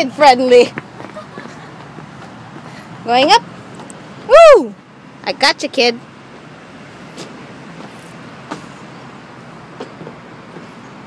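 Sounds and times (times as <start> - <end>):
steady background hum: 0.0 - 11.0
footsteps on metal steps: 0.5 - 2.8, 7.1 - 8.8, 9.7 - 10.8.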